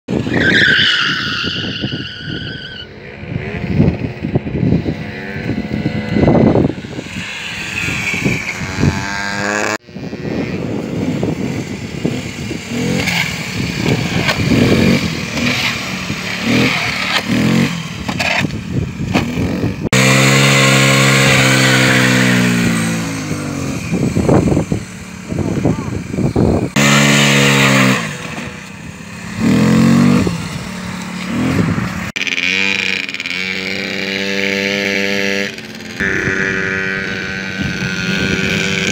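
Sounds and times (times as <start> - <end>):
scooter engine revving: 2.2 - 38.9.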